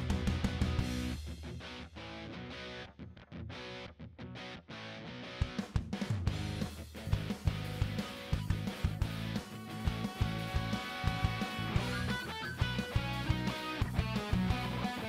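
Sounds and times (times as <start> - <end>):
guitar-led background music: 0.0 - 15.0.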